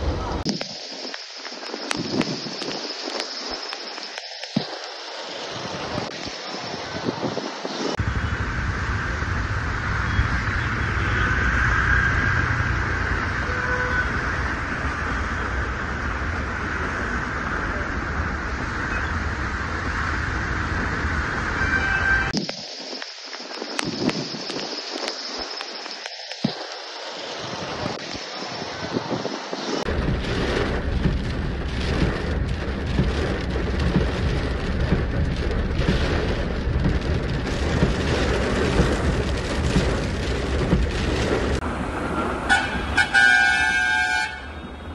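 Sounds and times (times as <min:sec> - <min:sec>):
rain: 0:00.0 - 0:44.9
traffic noise: 0:00.0 - 0:44.9
constant low rumble: 0:28.8 - 0:41.8.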